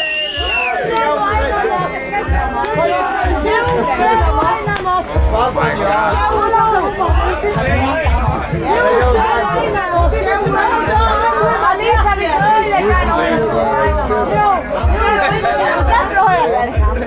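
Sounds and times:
background music with low beat: 0.0s - 17.0s
people talking at once: 0.0s - 17.0s.

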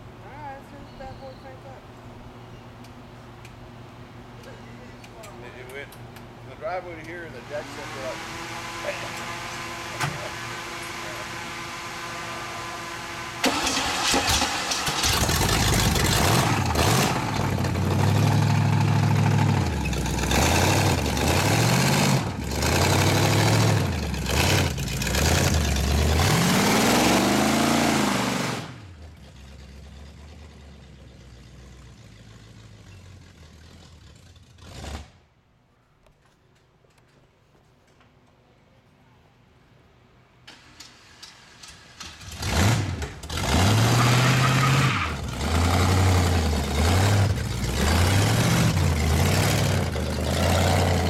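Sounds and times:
engine idling: 7.0s - 21.4s, 28.9s - 34.7s, 46.5s - 51.0s
engine starting and revving: 7.7s - 35.2s, 40.4s - 51.0s.

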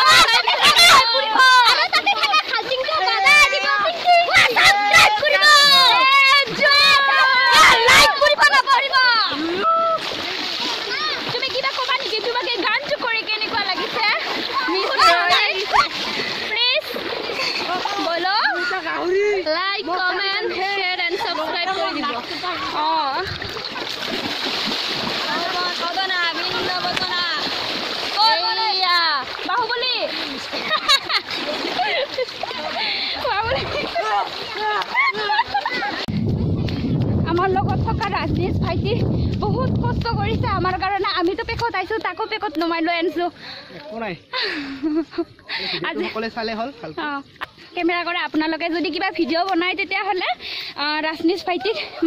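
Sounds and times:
splashing in muddy water: 0.0s - 19.4s, 20.0s - 43.2s
voices: 0.0s - 24.0s, 25.1s - 36.1s
children shouting and calling: 0.0s - 24.3s, 24.9s - 36.2s.

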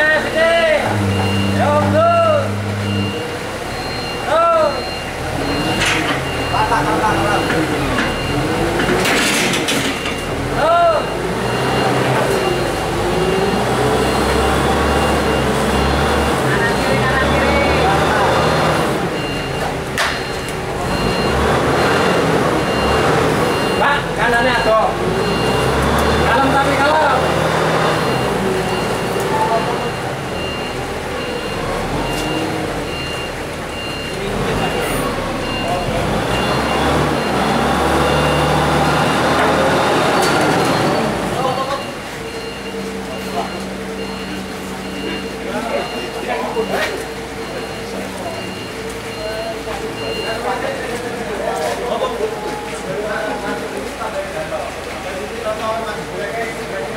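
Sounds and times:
men calling out: 0.0s - 3.2s
forklift engine running: 0.0s - 50.3s
high-pitched warning alarm beeps: 0.2s - 9.1s, 9.8s - 51.1s.

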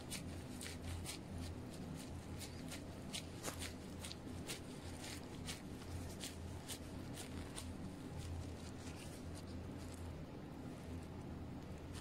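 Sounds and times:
low steady hum: 0.0s - 12.0s
plastic gloves crinkling: 0.0s - 12.0s.

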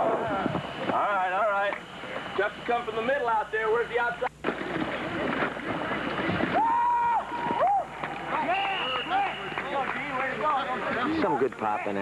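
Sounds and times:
voices shouting and yelling: 6.6s - 12.0s.

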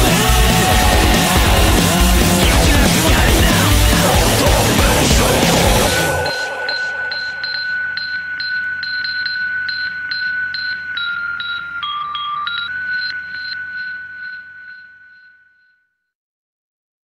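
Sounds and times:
pulsing high synthesizer tone: 0.0s - 15.7s.

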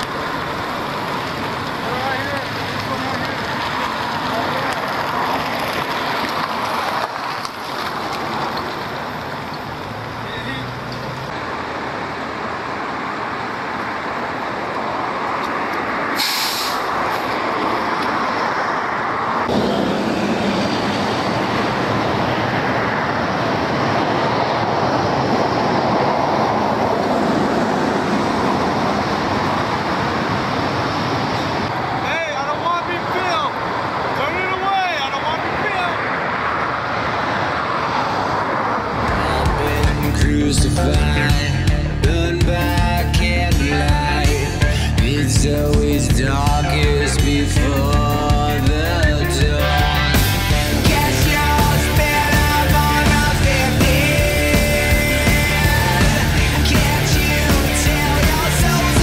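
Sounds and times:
emergency vehicles running: 0.0s - 59.0s
traffic noise: 0.0s - 59.0s
sharp hiss: 16.2s - 17.0s
indistinct voices: 39.0s - 59.0s.

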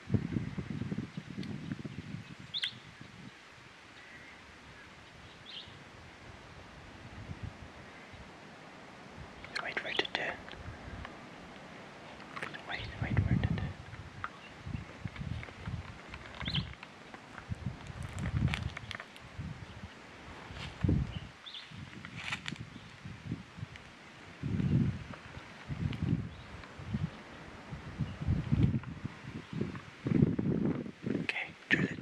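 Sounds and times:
rustling in dry bush: 0.4s - 31.8s
faint bird chirps: 1.6s - 3.3s, 3.9s - 5.8s, 12.4s - 15.5s, 16.4s - 16.8s.

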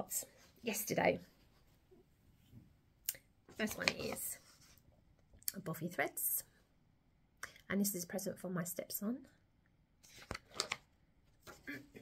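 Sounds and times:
person speaking: 3.6s - 4.5s
card rustling: 3.6s - 4.8s, 10.0s - 11.6s.

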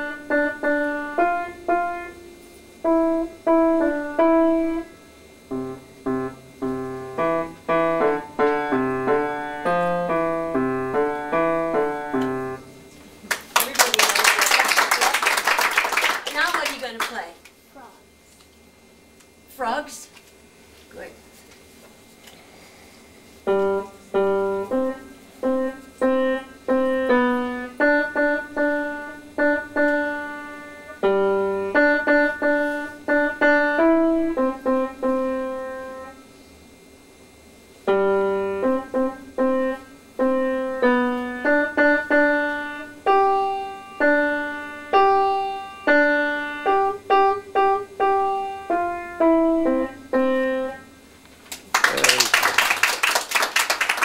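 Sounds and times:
child playing piano: 0.0s - 2.2s, 2.8s - 4.9s, 5.5s - 12.8s, 23.5s - 36.2s, 37.9s - 50.8s
audience clapping: 13.2s - 17.3s, 51.5s - 54.0s.

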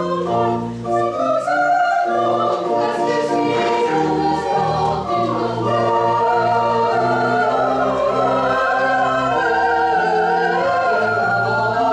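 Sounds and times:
church choir singing: 0.0s - 11.9s.

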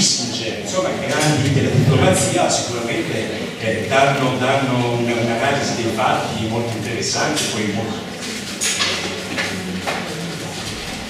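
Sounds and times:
indistinct talking: 0.0s - 11.0s.

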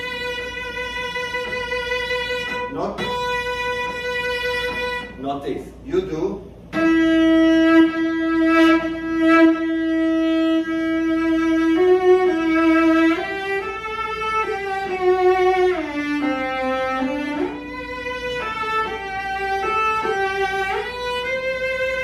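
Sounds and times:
bowed cello melody: 0.0s - 22.0s.

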